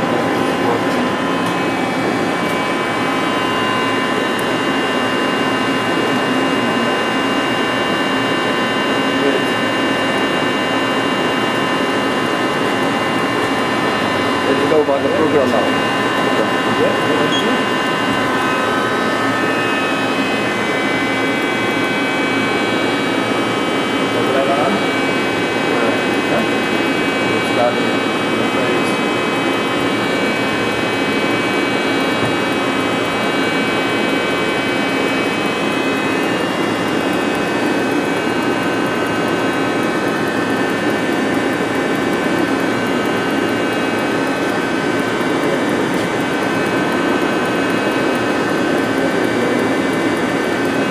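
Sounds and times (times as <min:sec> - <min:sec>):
lathe running with high whine: 0:00.0 - 0:50.9.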